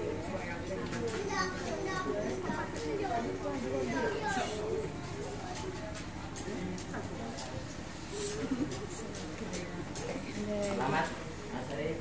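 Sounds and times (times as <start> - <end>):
background chatter: 0.0 - 12.0
children's voices: 1.1 - 6.0.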